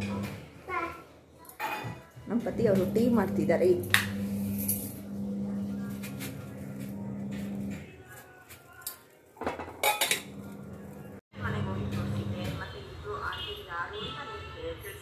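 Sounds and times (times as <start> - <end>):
metal pots clinking and scraping: 9.4 - 11.0.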